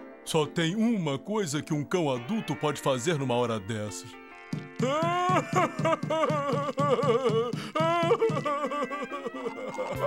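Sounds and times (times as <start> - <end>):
cartoon dog wailing and sobbing: 4.8 - 10.0.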